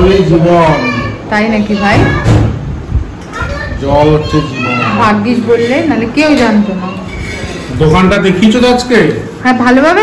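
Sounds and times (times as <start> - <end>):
child making high-pitched sounds: 0.5 - 2.6, 3.2 - 5.1.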